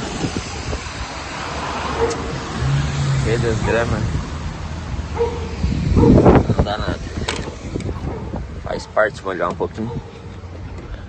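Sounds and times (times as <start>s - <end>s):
low rumble: 0.0s - 8.7s
hiss of rain and wind: 0.0s - 9.6s.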